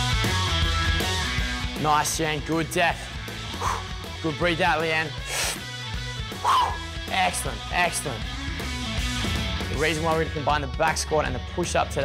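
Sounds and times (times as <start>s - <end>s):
background music: 0.0s - 12.0s
breathy exhale: 3.5s - 3.9s, 5.2s - 5.7s
person grunting: 6.4s - 6.8s.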